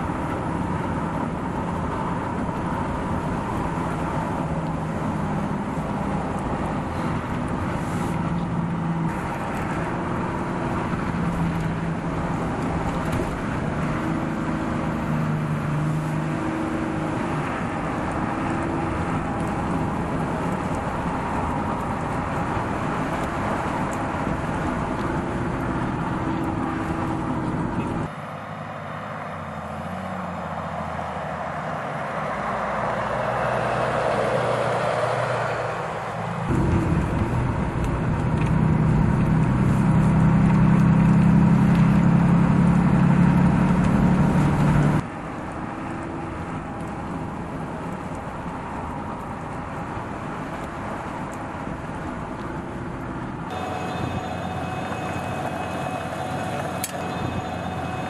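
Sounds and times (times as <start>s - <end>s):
pickup truck engine hum: 0.0s - 34.8s, 36.2s - 58.0s
vehicle passing by: 2.0s - 45.0s.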